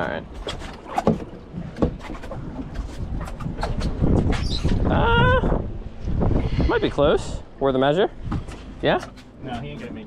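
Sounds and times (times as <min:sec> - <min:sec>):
low rumble of wind and water: 0:00.0 - 0:10.0.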